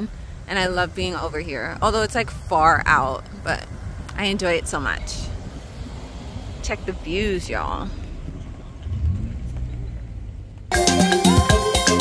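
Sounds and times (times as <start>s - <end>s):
low outdoor rumble: 0.0s - 10.7s.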